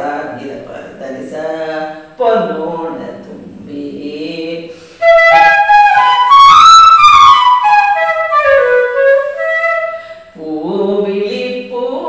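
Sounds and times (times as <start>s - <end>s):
bamboo flute melody: 5.0s - 10.2s.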